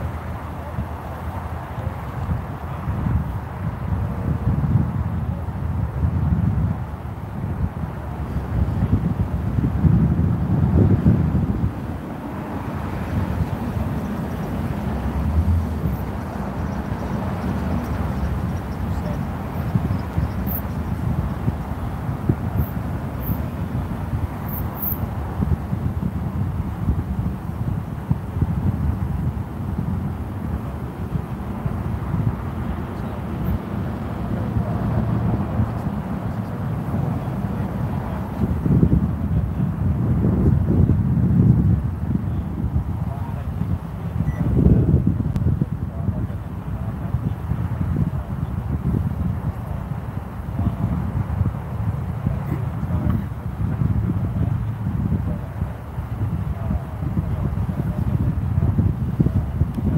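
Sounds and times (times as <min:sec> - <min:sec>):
passing street traffic: 0:00.0 - 0:59.9
wind on microphone: 0:00.0 - 0:59.9.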